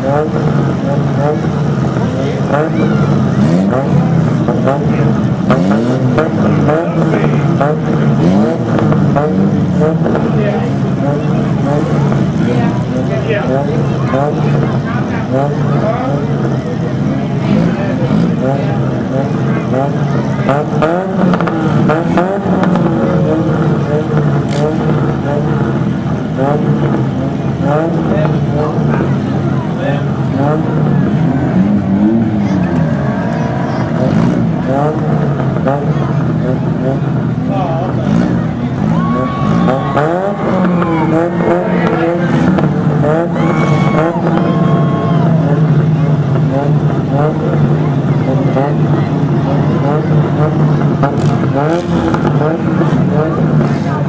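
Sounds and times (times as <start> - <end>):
car engines idling and revving: 0.0 - 54.0.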